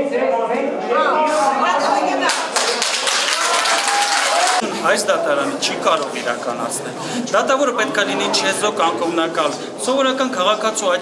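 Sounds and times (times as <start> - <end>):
people clapping: 2.2 - 4.7
people talking: 4.6 - 11.0.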